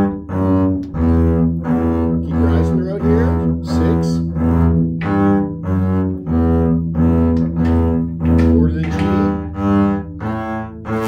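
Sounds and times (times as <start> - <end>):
bowed double bass notes: 0.0 - 11.0.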